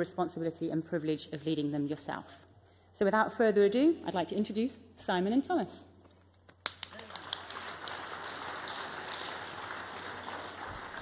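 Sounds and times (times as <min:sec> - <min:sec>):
audience applauding: 0:06.7 - 0:11.0.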